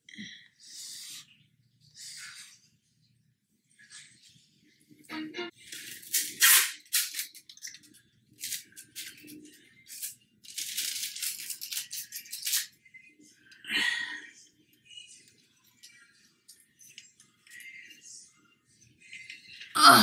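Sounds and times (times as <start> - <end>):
package crinkling and rattling: 5.7 - 12.7.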